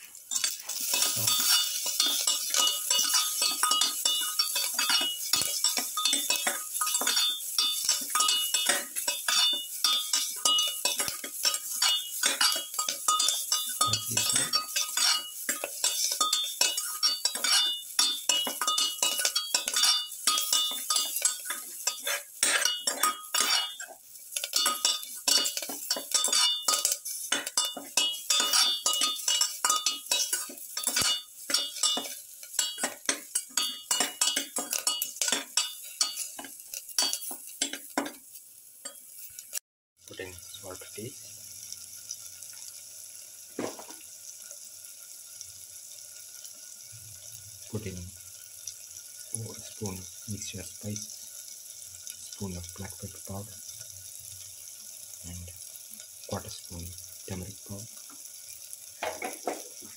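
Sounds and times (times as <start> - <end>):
hot oil sizzling: 0.0 - 59.9
spatula scraping metal pan: 0.3 - 38.2.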